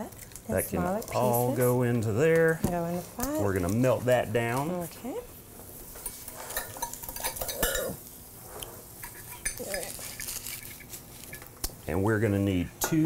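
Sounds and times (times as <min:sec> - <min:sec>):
utensils clinking against pans: 0:05.9 - 0:08.0, 0:09.0 - 0:11.4, 0:12.8 - 0:13.0.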